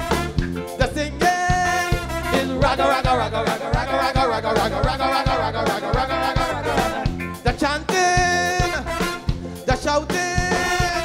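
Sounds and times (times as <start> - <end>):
live soca band: 0.0 - 11.0
steady drum beat: 0.0 - 11.0.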